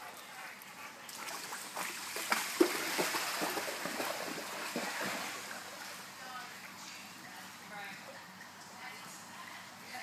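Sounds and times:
dog splashing in water: 1.2 - 5.8.

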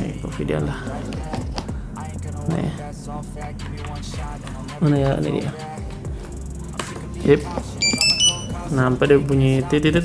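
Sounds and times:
short high beeps: 7.8 - 8.6.

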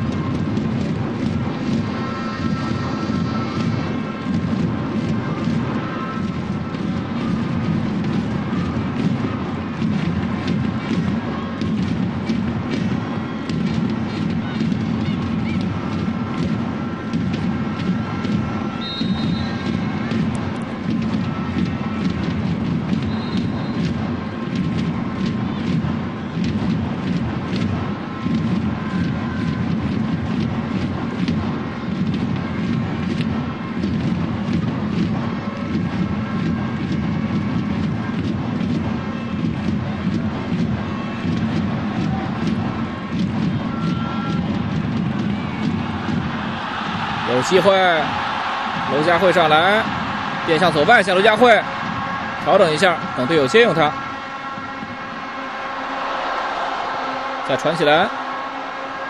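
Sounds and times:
stadium crowd roaring: 0.0 - 59.0
held chanting or horn tones: 1.7 - 4.4, 45.9 - 59.0.

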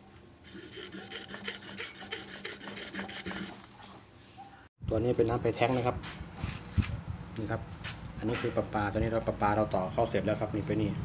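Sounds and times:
rapid rasping scrape: 0.4 - 4.0.

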